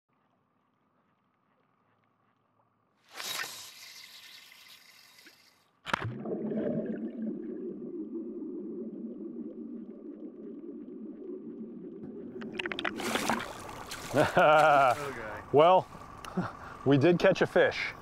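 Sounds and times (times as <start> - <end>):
underwater churning of bubbles: 6.1 - 14.2.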